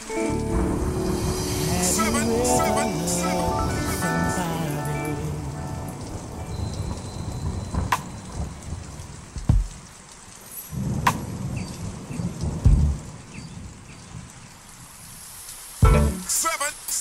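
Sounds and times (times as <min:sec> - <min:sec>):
thunder cracks and rolls: 0:00.0 - 0:14.6
steady rain: 0:00.0 - 0:17.0.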